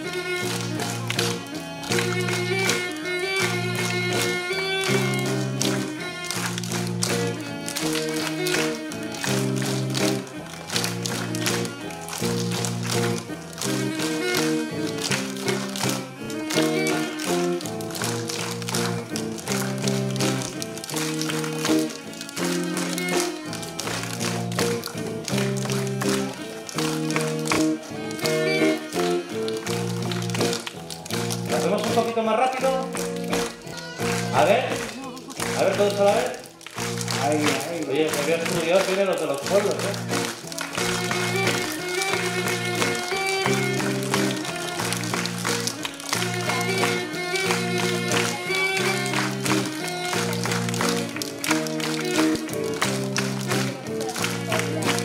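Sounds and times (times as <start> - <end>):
flute folk melody: 0.0 - 30.6, 39.5 - 55.0
finger snaps and claps: 0.0 - 32.1, 32.8 - 55.0
acoustic guitar strumming: 0.0 - 55.0.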